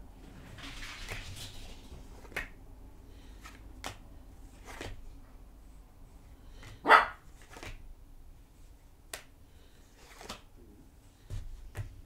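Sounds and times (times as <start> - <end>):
cards being shuffled: 0.6 - 2.6, 3.2 - 5.2, 6.5 - 7.9, 9.9 - 10.5, 11.2 - 12.0
dog bark: 6.8 - 7.2.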